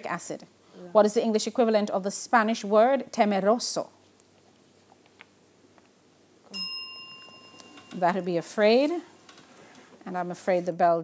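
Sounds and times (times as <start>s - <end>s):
bell ringing: 6.5s - 8.6s.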